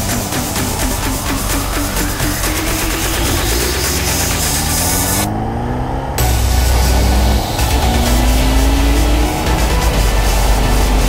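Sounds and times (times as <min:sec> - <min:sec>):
music: 0:00.0 - 0:05.3, 0:06.2 - 0:11.0
motorcycle engine accelerating: 0:00.0 - 0:11.0.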